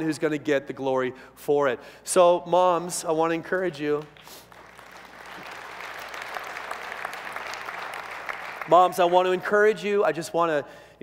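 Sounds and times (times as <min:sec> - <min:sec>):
audience clapping: 0:03.5 - 0:09.6.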